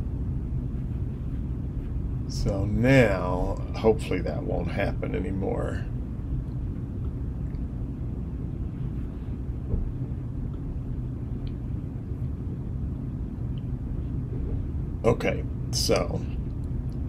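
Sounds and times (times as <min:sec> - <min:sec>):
low room rumble: 0:00.0 - 0:17.0.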